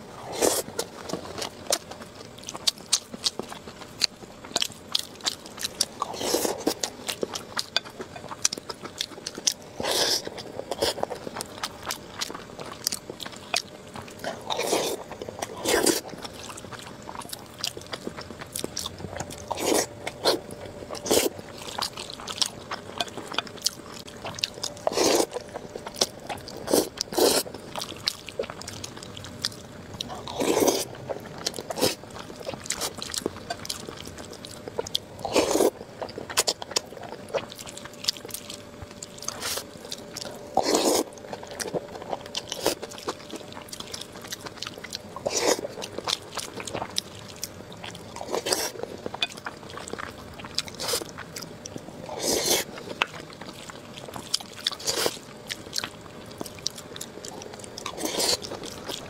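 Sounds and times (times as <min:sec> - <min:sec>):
chewing and biting food: 0:00.0 - 0:59.0.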